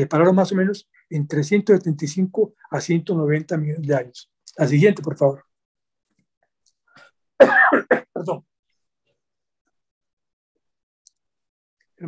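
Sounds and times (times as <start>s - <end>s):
man coughing: 7.4s - 8.4s.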